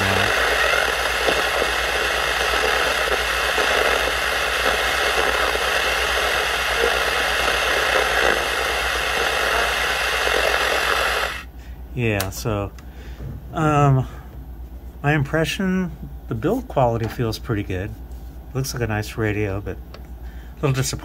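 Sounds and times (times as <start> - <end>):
radio static hiss: 0.0 - 11.5.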